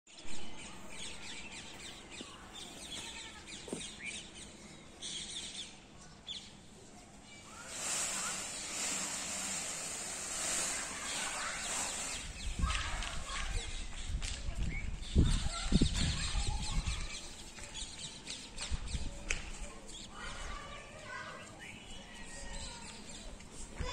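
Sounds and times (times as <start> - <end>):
steady outdoor hiss: 0.1 - 15.2, 15.8 - 23.9
small birds chirping: 0.1 - 23.9.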